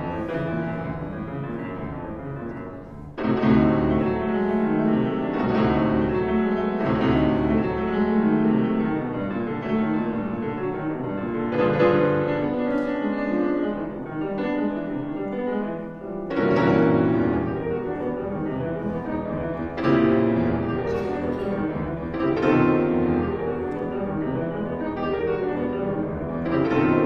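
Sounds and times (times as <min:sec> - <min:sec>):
grand piano playing: 0:00.0 - 0:27.0.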